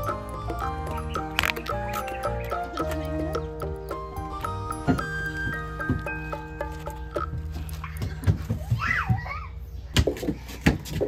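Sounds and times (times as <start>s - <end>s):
child's high voice: 7.7s - 9.7s.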